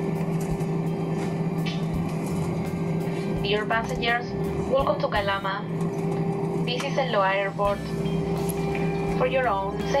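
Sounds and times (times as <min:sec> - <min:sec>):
constant hum tones: 0:00.0 - 0:10.0
jet engine cabin drone: 0:00.0 - 0:10.0.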